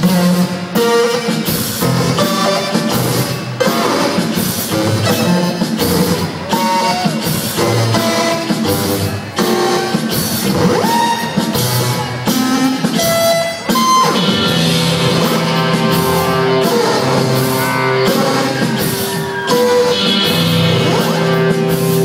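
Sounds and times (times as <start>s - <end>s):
drums: 0.0s - 22.0s
electric guitar: 0.0s - 22.0s.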